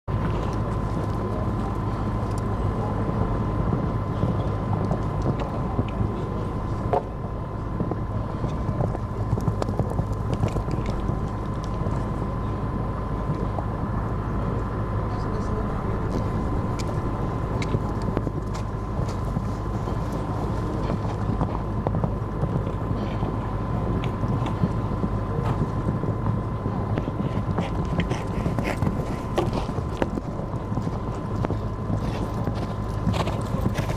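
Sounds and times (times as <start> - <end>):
wind on microphone: 0.1 - 33.9
hoofbeats on sand: 17.6 - 33.9.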